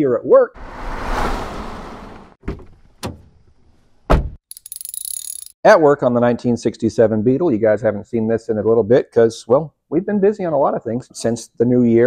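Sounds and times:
whoosh: 0.5 - 2.4
heavy thud: 4.1 - 4.4.

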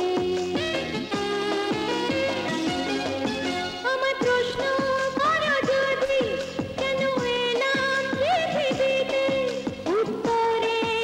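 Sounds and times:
instrumental backing: 0.0 - 11.0.

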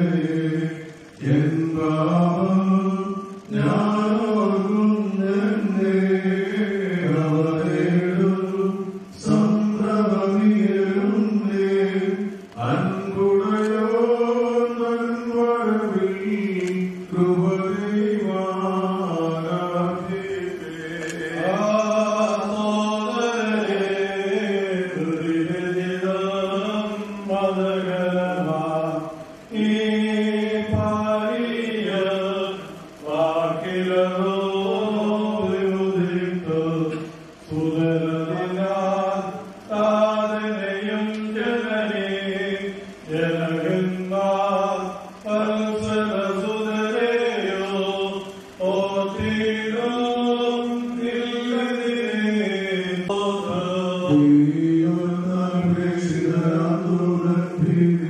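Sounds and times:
voices chanting a hymn: 0.0 - 58.0.

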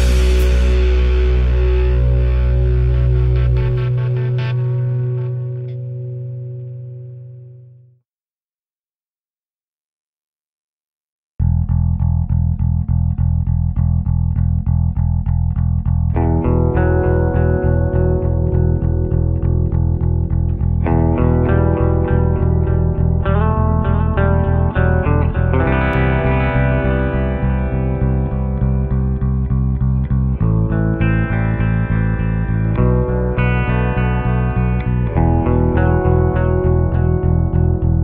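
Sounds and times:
bass guitar riff: 0.0 - 7.9, 11.4 - 38.0
electric guitar riff: 0.0 - 7.9, 11.4 - 38.0.

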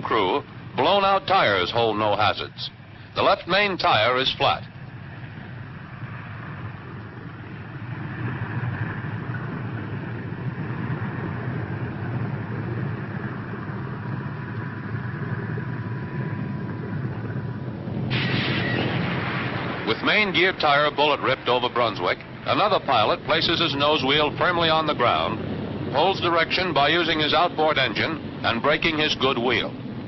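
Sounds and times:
propeller plane engines droning: 0.0 - 30.0.

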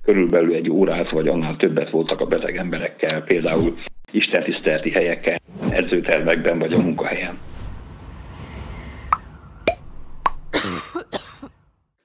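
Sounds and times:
person coughing: 10.5 - 11.5.

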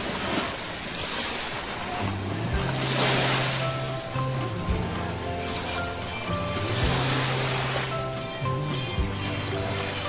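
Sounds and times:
ocean waves washing onto beach: 0.0 - 10.0
wind: 0.0 - 10.0
background music with bass: 2.0 - 10.0.

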